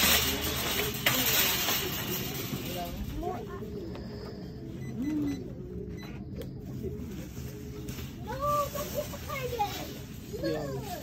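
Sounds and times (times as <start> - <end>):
low background hum: 0.0 - 11.0.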